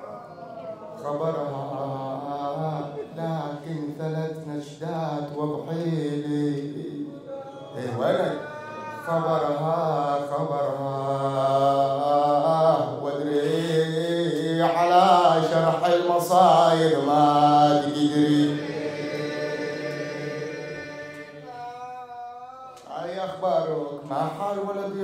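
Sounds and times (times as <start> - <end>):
man chanting through microphone: 0.0 - 18.7, 20.8 - 25.0.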